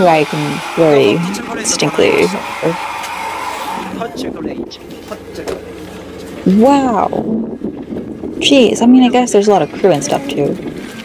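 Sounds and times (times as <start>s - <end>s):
outdoor background hum: 0.0s - 11.0s
young man speaking: 3.8s - 5.6s.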